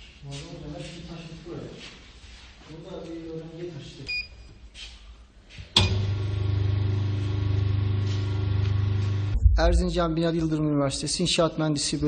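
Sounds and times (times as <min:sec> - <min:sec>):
electric machine humming: 0:05.8 - 0:09.4.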